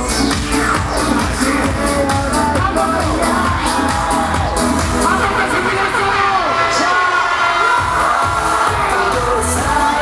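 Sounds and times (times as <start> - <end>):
loud live music over pa: 0.0 - 10.0
crowd cheering: 3.1 - 10.0.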